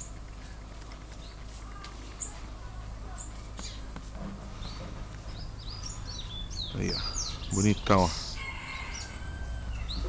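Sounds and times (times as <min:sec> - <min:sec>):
drawn-out bird call: 0:00.0 - 0:10.0
rising bird chirp: 0:03.1 - 0:10.0.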